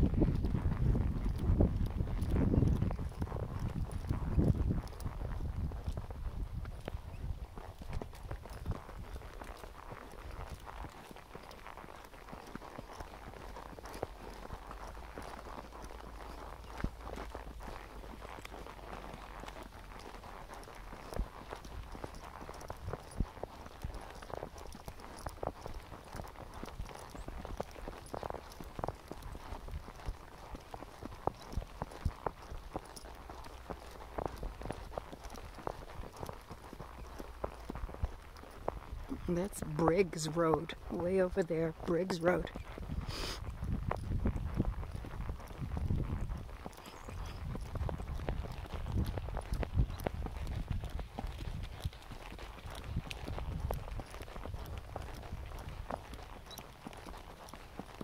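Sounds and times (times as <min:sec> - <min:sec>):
wind rumbling on microphone: 0:00.0 - 0:41.1, 0:42.4 - 0:58.0
horse hooves clip-clopping: 0:00.0 - 0:58.0.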